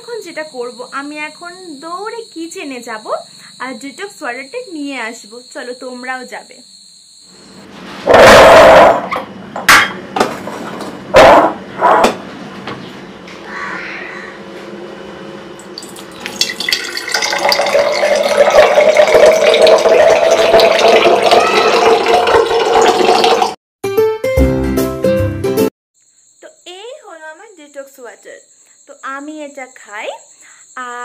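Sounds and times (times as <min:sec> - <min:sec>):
loud sudden sounds: 0:08.0 - 0:09.1
liquid pouring into glass jar: 0:15.7 - 0:23.6.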